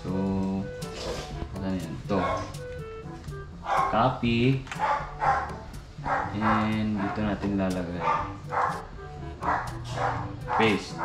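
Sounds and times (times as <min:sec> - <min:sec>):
music: 0:00.0 - 0:11.0
dog barking: 0:02.1 - 0:02.6, 0:03.6 - 0:04.1, 0:04.8 - 0:11.0
person's voice: 0:06.3 - 0:08.2.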